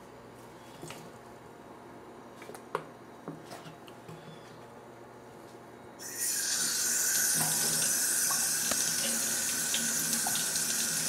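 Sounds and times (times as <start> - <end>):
water running into sink: 6.0 - 11.0.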